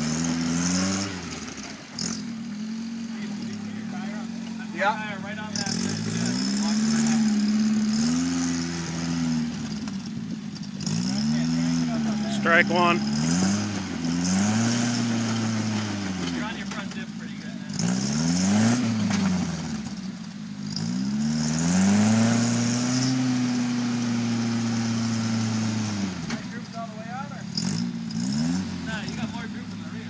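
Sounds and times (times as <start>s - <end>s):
buggy engine revving: 0.0s - 30.0s.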